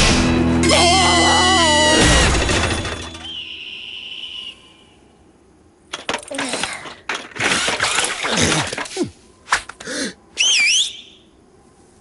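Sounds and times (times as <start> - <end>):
wavering whistle: 3.2 - 5.1, 10.4 - 11.3.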